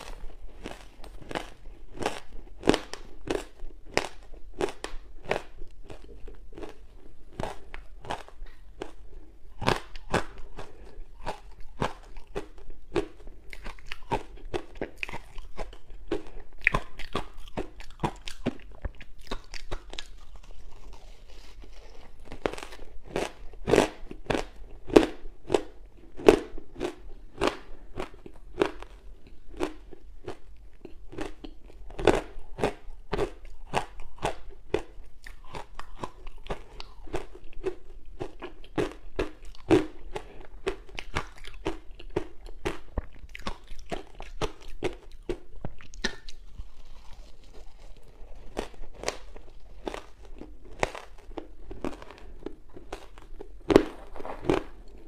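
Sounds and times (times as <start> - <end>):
crunchy ice chewing: 0.0 - 55.0.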